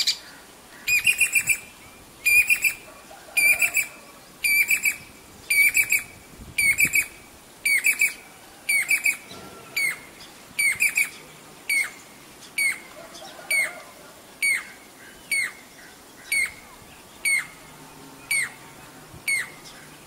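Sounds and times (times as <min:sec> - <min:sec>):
cuckoo calling: 0:00.0 - 0:20.0.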